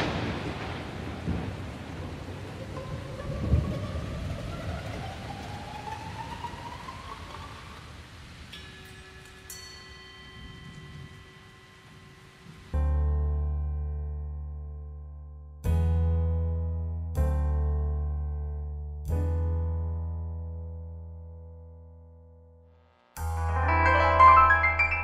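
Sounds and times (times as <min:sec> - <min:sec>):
thunder rumble: 0:00.0 - 0:08.4
rain-like hiss: 0:00.0 - 0:13.1
rising whistle: 0:03.2 - 0:07.8
chime-like tones: 0:08.6 - 0:12.4, 0:23.2 - 0:25.0.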